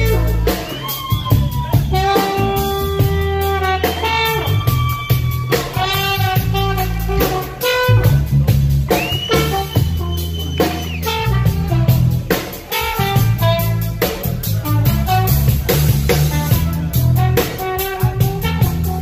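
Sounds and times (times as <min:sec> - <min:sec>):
live rock band playing: 0:00.0 - 0:19.0.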